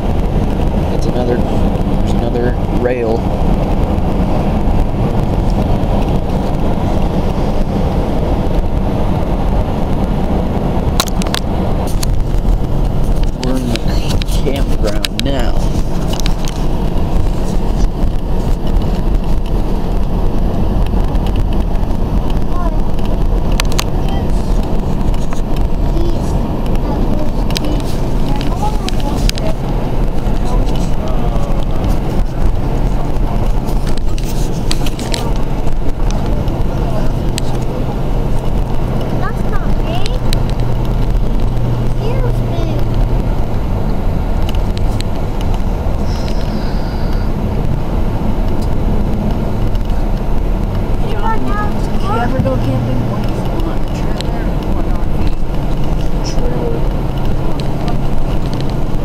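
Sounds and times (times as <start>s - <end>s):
car road noise rumble: 0.0s - 59.0s.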